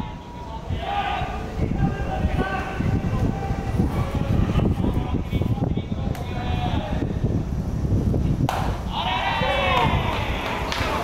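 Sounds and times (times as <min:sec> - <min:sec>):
loud wavering shout: 0:08.9 - 0:10.6.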